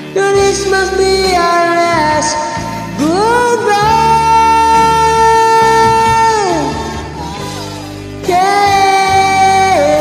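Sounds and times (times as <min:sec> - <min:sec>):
karaoke backing music: 0:00.0 - 0:10.0.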